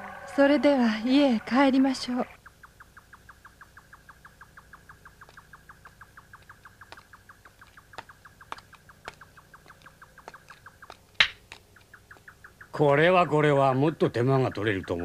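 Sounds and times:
small animal chirping: 1.5s - 15.0s
sharp clicks: 4.0s - 12.8s.

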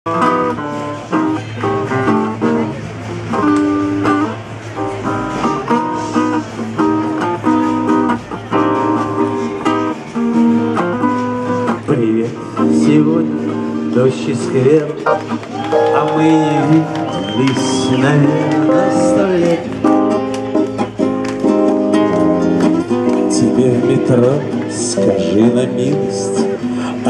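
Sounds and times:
acoustic guitar chords: 0.1s - 27.0s
electric keyboard: 14.8s - 22.9s.

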